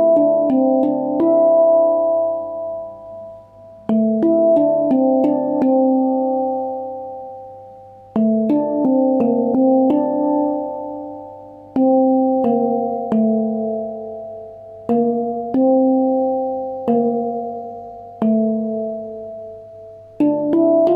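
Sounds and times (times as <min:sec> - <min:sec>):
handpan notes ringing: 0:00.0 - 0:20.9.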